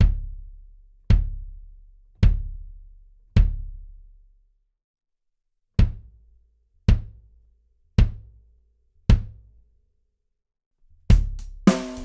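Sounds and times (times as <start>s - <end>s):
muffled kick drum hits: 0.0s - 0.4s, 1.1s - 1.5s, 2.2s - 2.6s, 3.4s - 3.8s, 5.8s - 6.2s, 6.9s - 7.2s, 8.0s - 8.3s.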